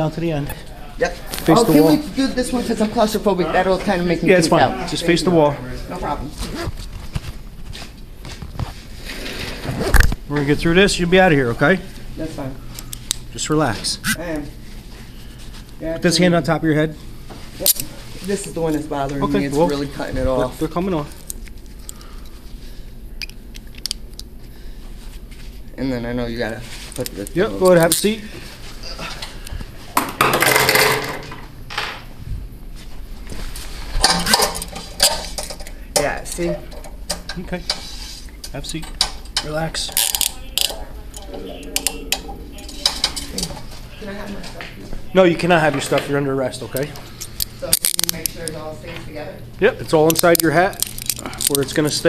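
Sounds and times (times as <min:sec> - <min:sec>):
light shuffling steps: 0:05.8 - 0:09.0, 0:13.6 - 0:15.9, 0:24.4 - 0:25.8, 0:26.4 - 0:27.6, 0:32.2 - 0:34.0
handcuffs clinking on metal bench: 0:40.0 - 0:41.9.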